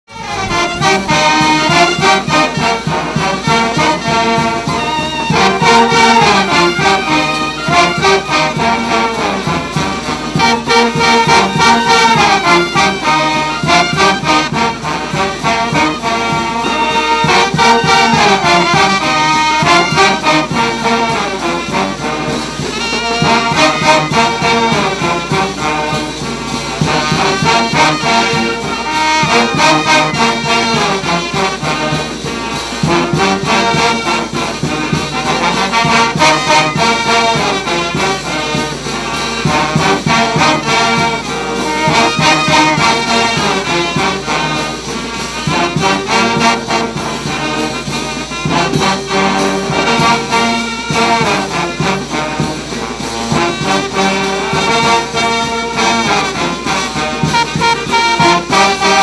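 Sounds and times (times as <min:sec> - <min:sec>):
brass band playing: 0:00.0 - 0:59.0
drum kit and percussion: 0:00.1 - 0:59.0.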